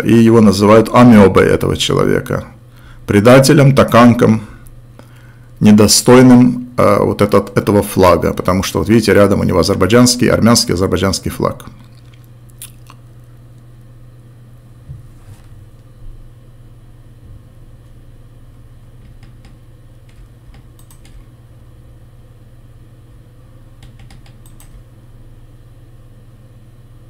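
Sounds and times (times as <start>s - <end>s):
low room hum: 0.0s - 27.0s
faint computer clicks: 19.0s - 21.3s, 23.8s - 24.9s.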